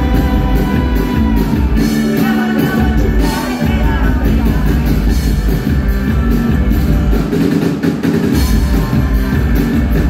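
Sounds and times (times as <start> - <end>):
drum beat: 0.0 - 10.0
rock band playing live: 0.0 - 10.0.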